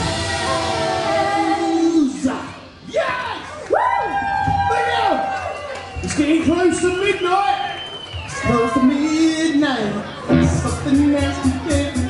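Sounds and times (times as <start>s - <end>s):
live band playing: 0.0s - 2.1s, 10.2s - 12.0s.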